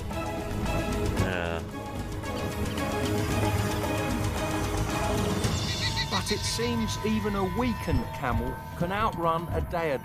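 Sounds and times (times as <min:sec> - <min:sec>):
documentary soundtrack music: 0:00.0 - 0:10.0.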